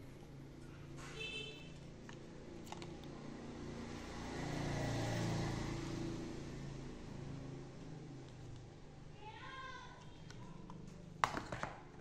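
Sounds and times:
passing vehicle engine hum: 3.1 - 9.1.

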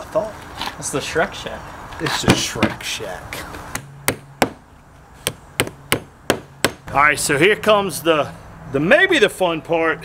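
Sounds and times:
hammer striking nails: 3.8 - 4.6, 5.2 - 6.8.

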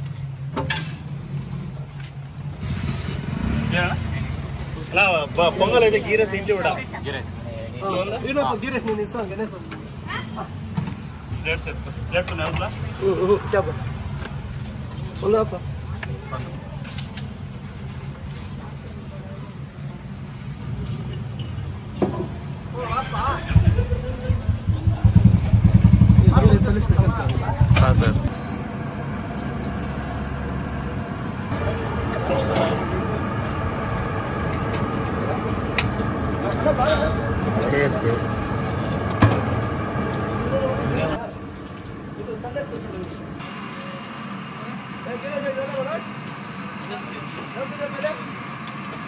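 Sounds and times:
vehicle engine rumbling: 0.0 - 10.0, 10.6 - 49.0.

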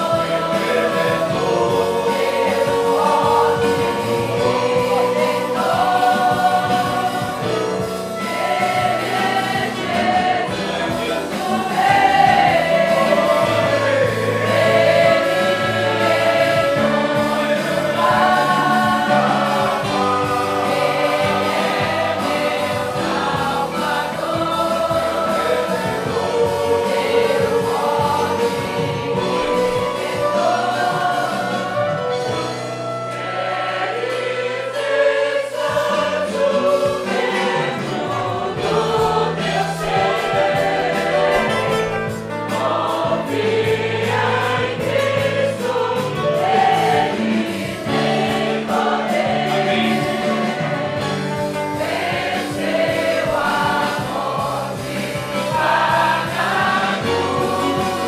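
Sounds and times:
congregation singing a hymn: 0.0 - 58.0
violins: 0.0 - 58.0.

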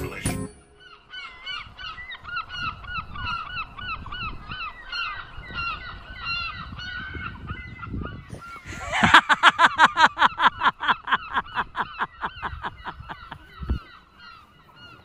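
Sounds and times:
gulls calling: 0.0 - 15.0.

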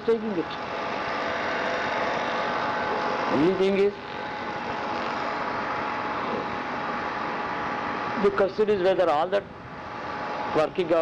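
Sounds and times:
steady hissing noise: 0.0 - 11.0.

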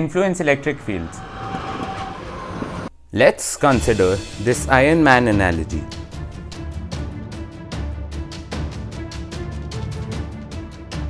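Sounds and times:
train running on rails: 0.0 - 6.7.

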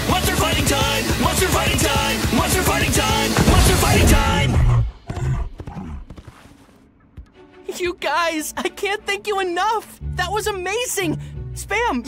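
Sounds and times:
rock song with singing: 0.0 - 4.8.

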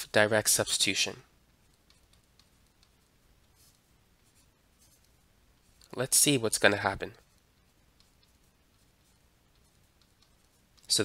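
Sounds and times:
stylus scratching on tablet: 1.5 - 11.0.

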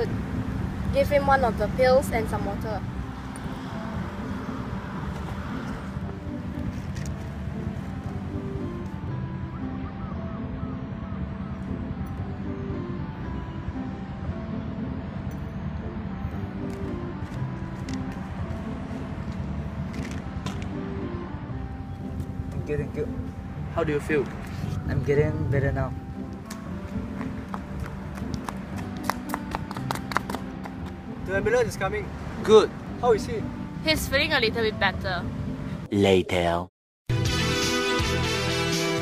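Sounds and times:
low rumble of outdoor noise: 0.0 - 29.0
soft music of held notes: 6.0 - 35.3.

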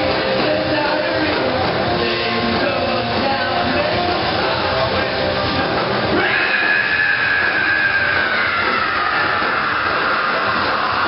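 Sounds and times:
distorted live rock band: 0.0 - 11.0
electric guitar feedback squeal: 5.5 - 11.0.

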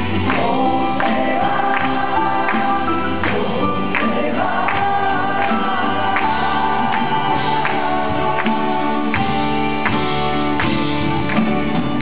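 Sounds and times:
voices singing together: 0.0 - 9.4
acoustic rock band playing: 0.0 - 12.0.

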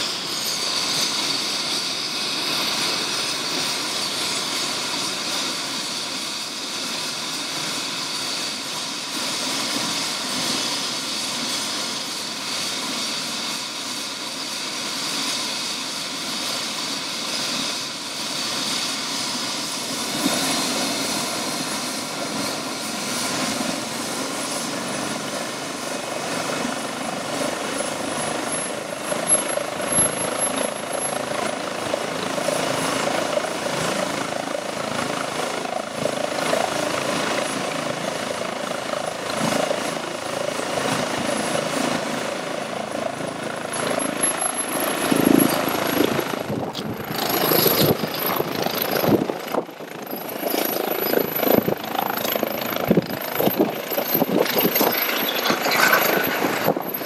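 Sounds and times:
helicopter turbine whine and rotor: 0.0 - 57.0.

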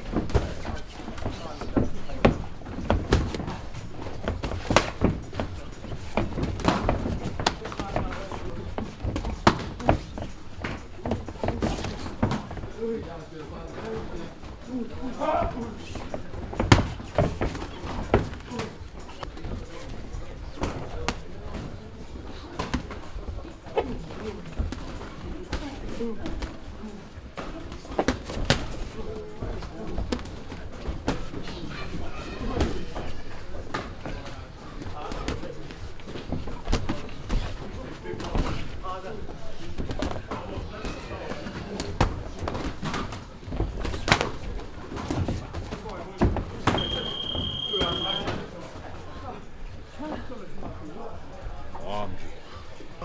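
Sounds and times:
voices in gym: 0.0 - 53.0.

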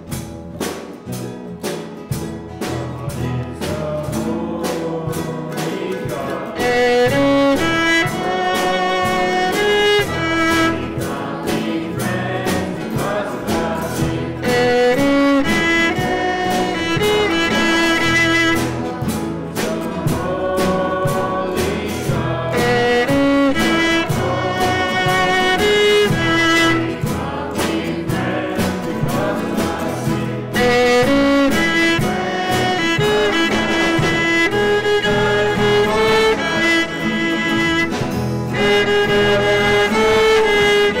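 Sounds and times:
instrumental accompaniment: 0.0 - 41.0
voices singing a worship song: 2.6 - 41.0.

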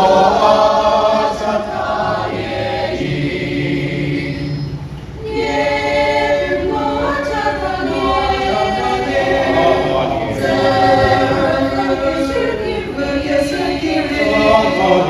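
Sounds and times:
mixed choir singing: 0.0 - 15.0.

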